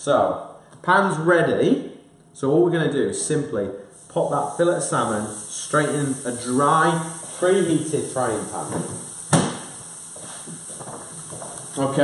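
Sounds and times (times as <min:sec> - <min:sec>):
faint sizzle: 0:03.7 - 0:12.0.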